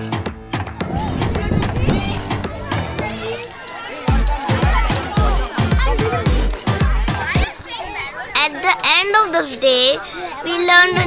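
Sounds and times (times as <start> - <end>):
children chattering and calling: 0.8 - 11.0
background music with bass beat: 4.0 - 7.5.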